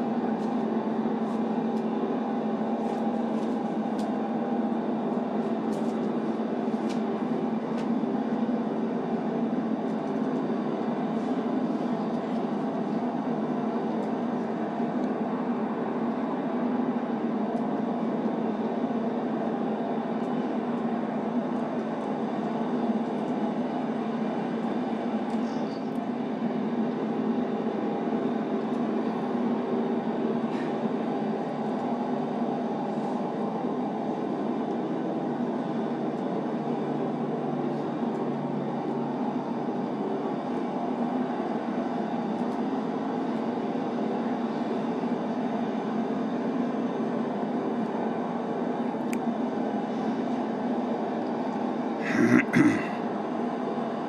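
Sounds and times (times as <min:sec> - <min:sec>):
constant low hum: 0:00.0 - 0:54.0.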